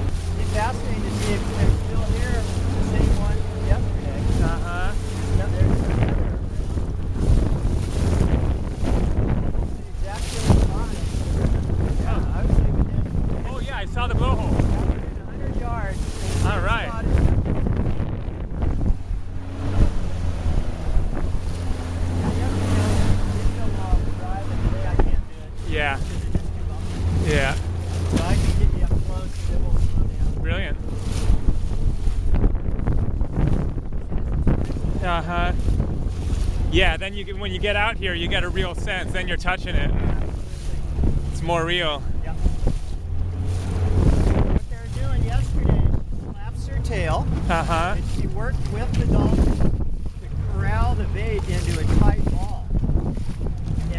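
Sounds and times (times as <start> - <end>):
motorboat engine running: 0.0 - 53.9
water rushing past hull: 0.0 - 53.9
wind buffeting microphone: 0.0 - 53.9.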